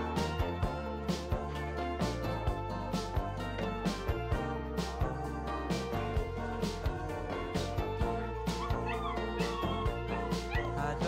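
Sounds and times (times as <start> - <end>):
music with steady beat: 0.0 - 11.0
puppy whimpering and yipping: 8.5 - 11.0.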